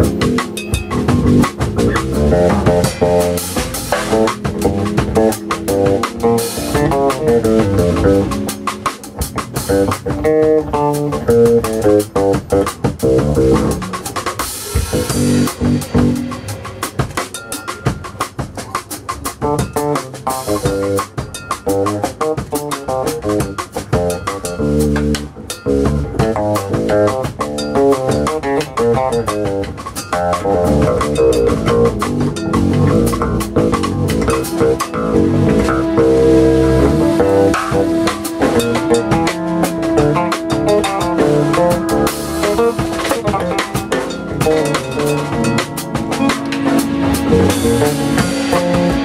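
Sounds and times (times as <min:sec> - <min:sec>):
electric bass: 0:00.0 - 0:16.8, 0:19.4 - 0:49.0
drum kit: 0:00.0 - 0:49.0.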